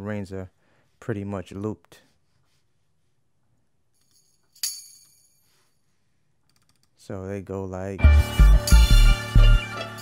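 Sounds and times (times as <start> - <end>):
tambourine hit: 8.1 - 10.0.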